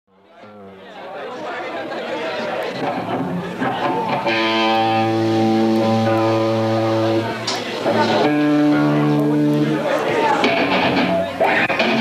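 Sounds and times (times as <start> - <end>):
audience chatter: 0.1 - 12.0.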